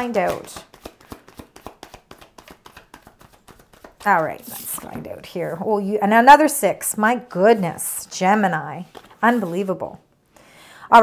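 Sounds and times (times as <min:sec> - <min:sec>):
cards being shuffled by hand: 0:00.0 - 0:05.6, 0:08.8 - 0:09.6.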